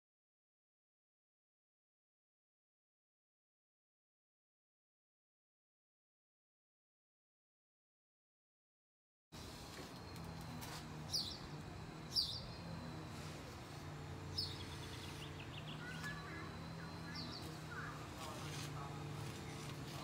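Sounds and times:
steady low hum: 9.4 - 20.0
bird chirping: 10.0 - 20.0.

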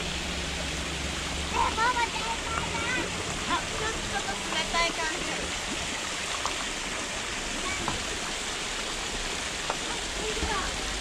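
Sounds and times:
water splashing into stone basin: 0.0 - 10.8.

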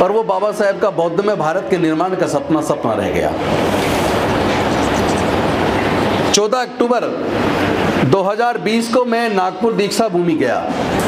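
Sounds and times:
loud rumbling noise: 3.3 - 6.4.

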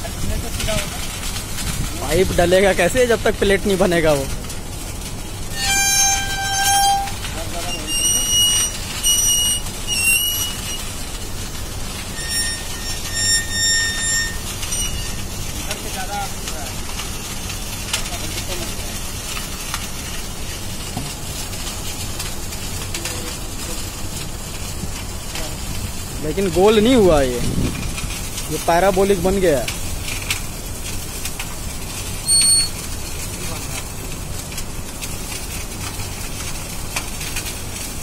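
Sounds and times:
outdoor background noise: 0.0 - 38.0
short high horn toots: 5.5 - 10.8.

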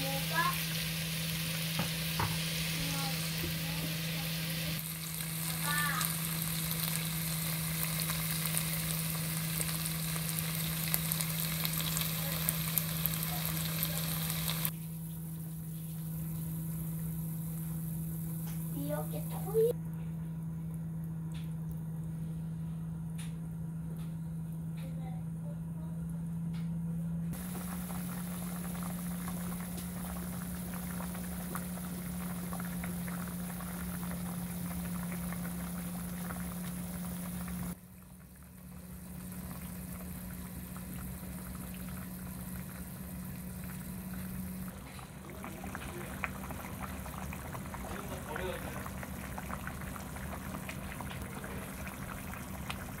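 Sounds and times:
stew bubbling in a pot: 0.0 - 19.8, 27.4 - 53.0
steady low hum: 0.0 - 53.0.

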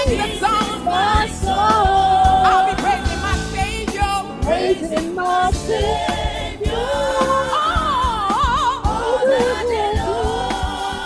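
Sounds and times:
backing voices singing: 0.0 - 11.0
band playing: 0.0 - 11.0
steady drum beat: 0.0 - 11.0
woman singing gospel: 0.0 - 11.0.

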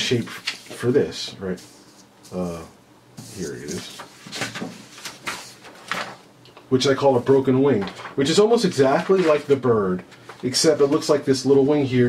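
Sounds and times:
paper rustling: 0.0 - 2.4, 3.2 - 6.2, 7.1 - 11.7.

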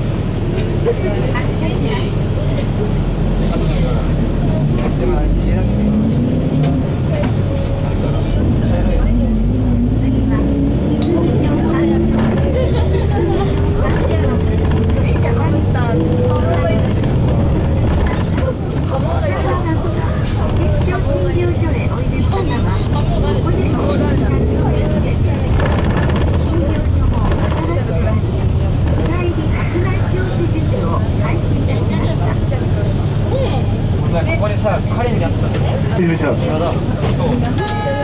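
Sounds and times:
diesel bus engine accelerating: 0.0 - 38.0
passengers talking: 0.0 - 38.0.

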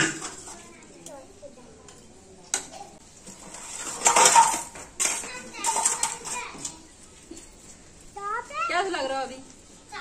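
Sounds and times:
metal utensils clattering: 3.3 - 6.8.

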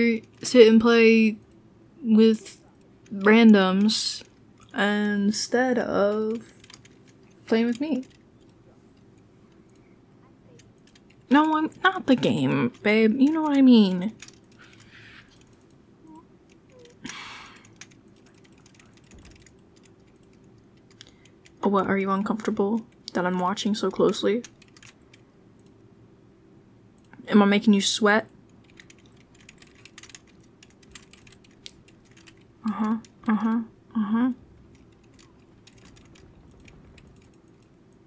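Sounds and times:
keyboard keys clicking: 6.0 - 9.8, 10.5 - 21.6, 22.3 - 25.8, 28.5 - 33.6, 34.6 - 38.0
keyboard keystroke clicks: 16.6 - 21.2.

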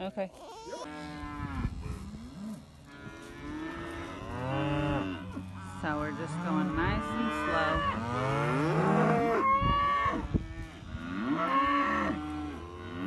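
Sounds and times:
cows mooing: 0.8 - 13.0.

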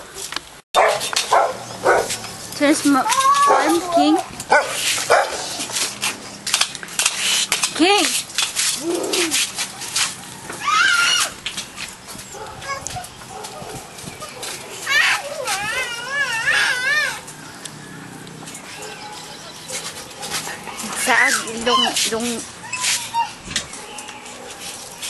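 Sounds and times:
dog whining: 3.0 - 5.6, 8.8 - 9.4, 12.4 - 17.2, 18.7 - 24.5.

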